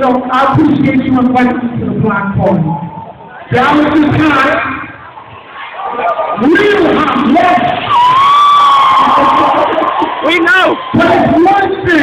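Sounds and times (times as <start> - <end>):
crowd cheering: 3.3 - 12.0.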